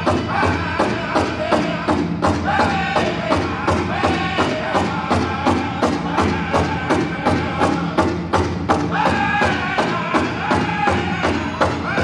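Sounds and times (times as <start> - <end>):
high-pitched singing voices: 0.0 - 8.1, 8.8 - 12.0
big drum steady beat: 0.0 - 12.0.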